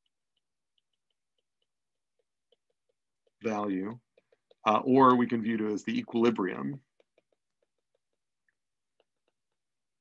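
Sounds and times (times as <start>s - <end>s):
stylus tapping on tablet screen: 0.0s - 10.0s.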